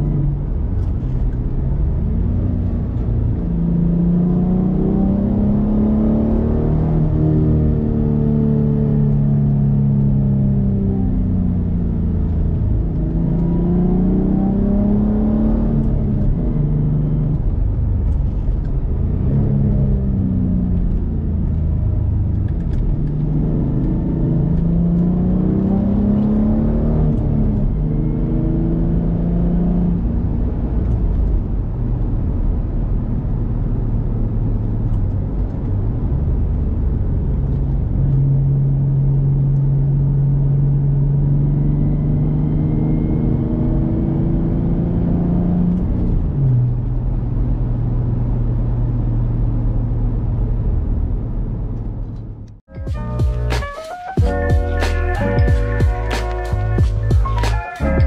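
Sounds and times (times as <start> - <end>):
car engine accelerating: 0.0 - 58.0
low road rumble: 0.0 - 58.0.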